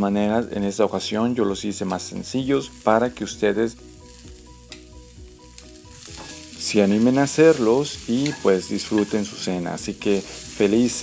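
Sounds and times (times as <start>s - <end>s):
asparagus sizzling in a pan: 0.0s - 11.0s.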